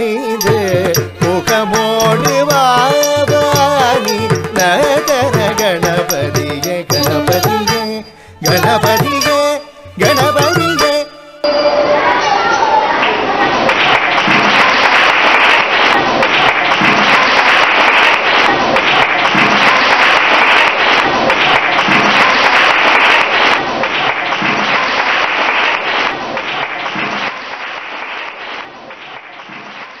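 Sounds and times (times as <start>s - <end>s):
audience applauding: 12.8s - 30.0s.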